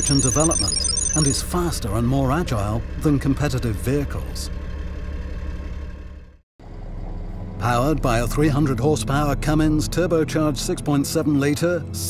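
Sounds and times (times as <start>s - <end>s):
diesel engine running: 0.0s - 9.5s
deep engine rumble: 1.2s - 11.1s.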